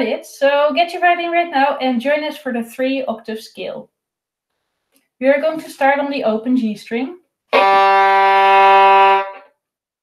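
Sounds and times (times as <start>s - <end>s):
violin long bowed note: 7.5s - 9.5s.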